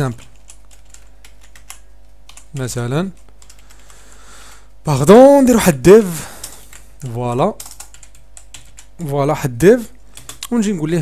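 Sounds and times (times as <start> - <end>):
keyboard typing: 0.0 - 4.7, 6.3 - 9.1, 10.1 - 10.8.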